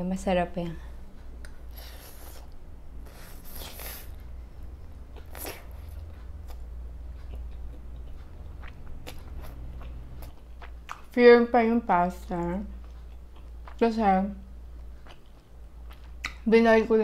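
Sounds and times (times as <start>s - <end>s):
chewing with wet mouth clicks: 5.0s - 11.1s, 12.3s - 14.0s, 14.7s - 16.5s.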